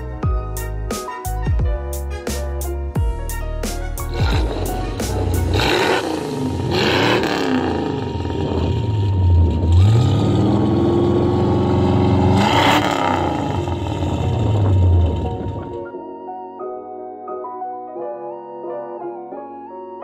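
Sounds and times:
background music: 0.0s - 20.0s
car engine revving: 4.1s - 15.8s.

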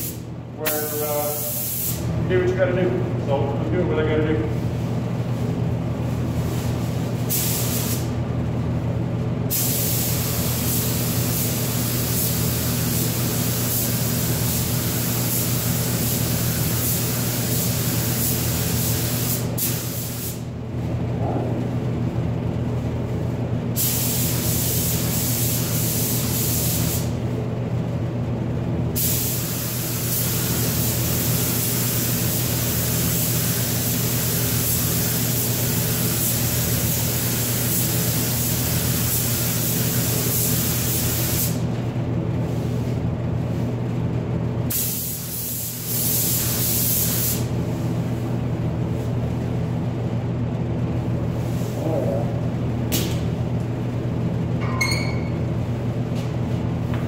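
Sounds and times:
steady low hum: 0.0s - 57.0s
paint spray gun hissing: 1.3s - 2.1s, 7.2s - 8.1s, 9.5s - 20.4s, 44.7s - 47.5s.

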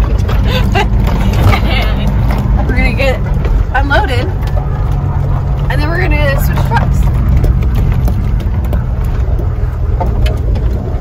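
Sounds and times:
diesel truck engine rumbling: 0.0s - 11.0s.

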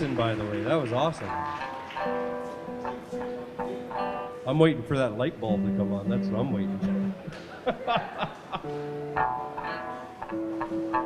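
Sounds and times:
slow plucked guitar notes: 1.2s - 7.4s, 8.6s - 11.0s.

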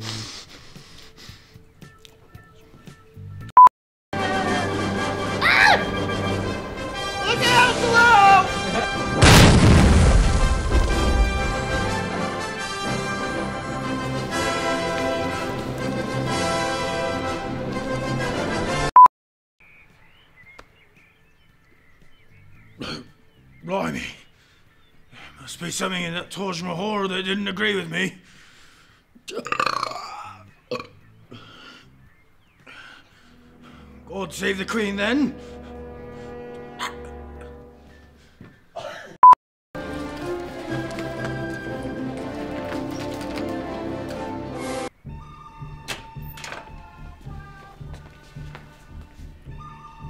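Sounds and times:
background music: 0.0s - 3.5s, 4.2s - 18.9s, 29.4s - 38.4s, 39.8s - 50.0s
heavy landing impact boom: 9.2s - 12.1s
man belching: 22.8s - 23.2s, 29.3s - 31.0s.

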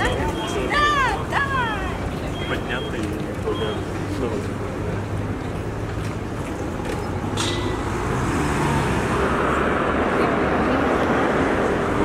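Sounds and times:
pedestrians chattering: 0.0s - 12.0s
traffic rumbling: 0.0s - 12.0s.

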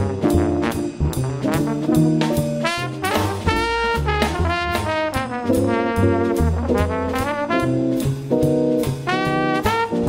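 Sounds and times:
trombone melody: 0.0s - 10.0s
upright bass line: 0.0s - 10.0s
percussion hits: 0.4s - 9.9s.

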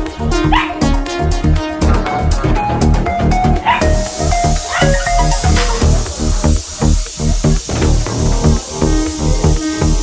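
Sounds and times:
background music with beat: 0.0s - 10.0s
small dog yapping: 3.6s - 3.9s, 4.6s - 5.5s.

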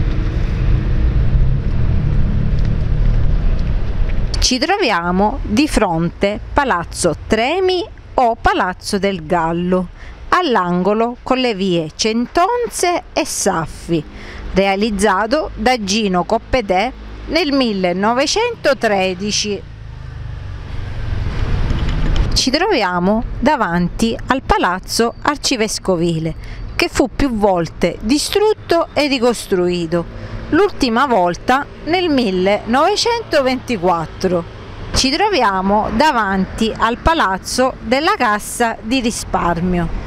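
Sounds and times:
vehicle passing close by: 0.0s - 4.4s, 16.4s - 22.4s, 29.6s - 38.2s
road traffic rumble: 0.0s - 40.0s.

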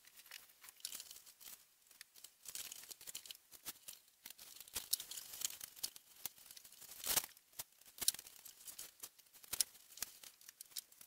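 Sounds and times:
faint crackling clicks: 0.0s - 11.0s.

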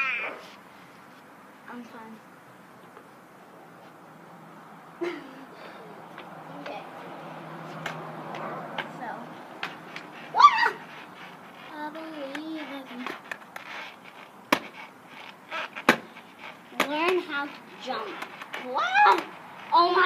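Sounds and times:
child crying out: 0.0s - 0.4s, 10.3s - 10.9s
skateboard rolling on concrete: 0.0s - 20.0s
skateboard deck clacking: 7.8s - 10.2s, 10.9s - 20.0s.

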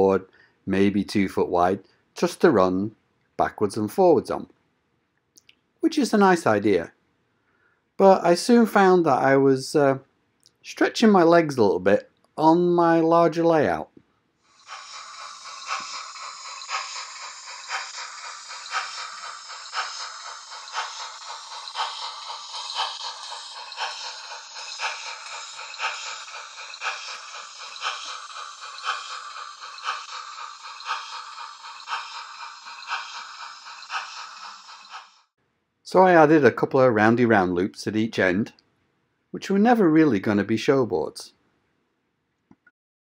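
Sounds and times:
model train rattling whir: 14.5s - 35.3s
model train track clicks: 14.6s - 35.3s.

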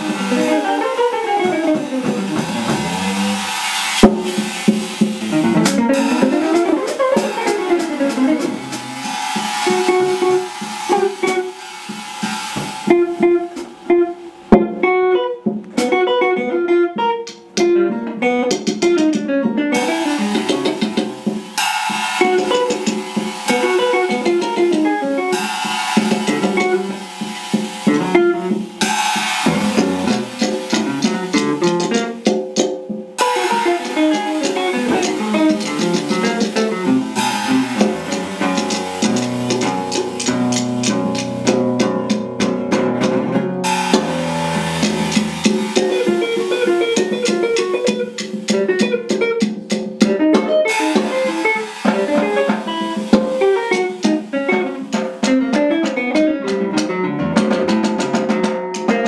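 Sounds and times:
drum kit and cymbals: 0.0s - 59.0s
electric guitar playing jazz: 0.0s - 59.0s.

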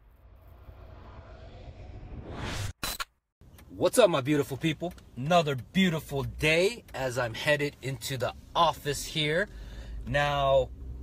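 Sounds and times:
low rumbling drone: 0.0s - 2.7s.

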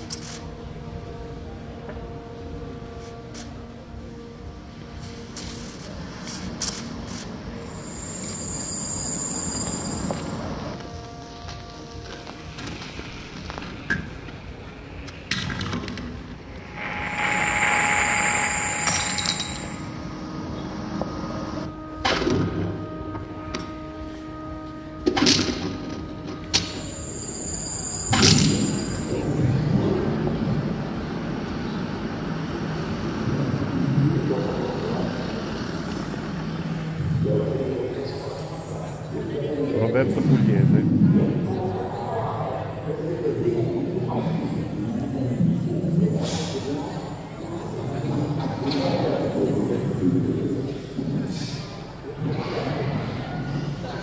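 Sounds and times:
steady held tones: 6.9s - 13.6s, 16.4s - 31.5s
high whistling tone: 7.5s - 11.2s, 16.5s - 29.6s.

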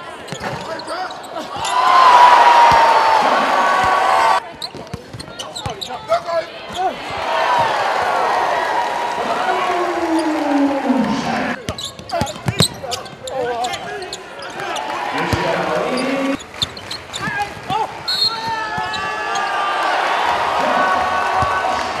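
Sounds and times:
gymnasium crowd voices: 0.0s - 22.0s.

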